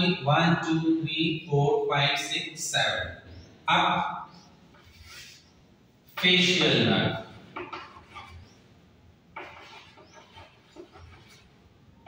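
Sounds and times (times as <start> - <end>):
chalk scraping on blackboard: 4.7 - 5.5, 7.5 - 8.6, 9.3 - 11.7.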